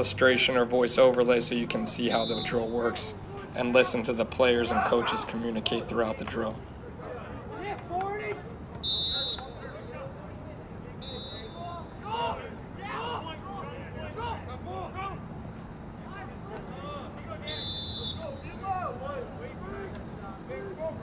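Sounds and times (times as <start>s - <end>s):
people calling out: 1.8s - 15.3s, 16.0s - 21.0s
coach's whistle blasts: 2.1s - 3.1s, 8.8s - 9.8s, 11.0s - 12.0s, 17.4s - 18.6s.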